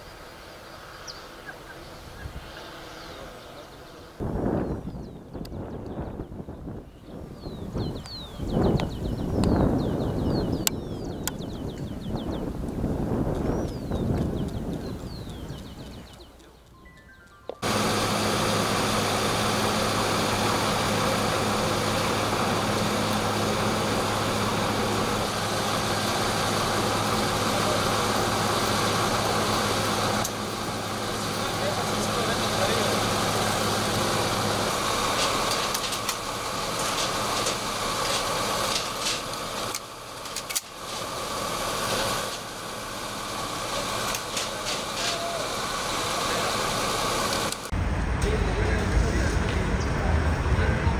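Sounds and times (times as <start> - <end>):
military truck engines running: 0.0 - 50.9
indistinct voices: 18.7 - 39.3, 43.3 - 50.9.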